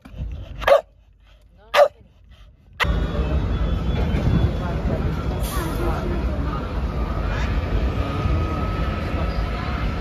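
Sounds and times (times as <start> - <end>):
outdoor background noise: 0.0 - 10.0
dog barking: 0.6 - 0.9, 1.7 - 2.0.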